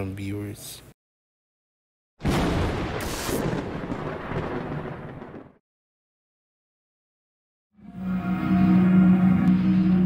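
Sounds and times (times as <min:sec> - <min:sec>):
thunder-like rumble: 0:02.2 - 0:05.6.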